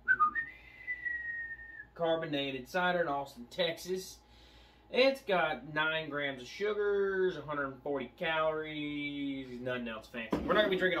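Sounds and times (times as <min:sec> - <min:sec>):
high whistle: 0:00.0 - 0:02.0.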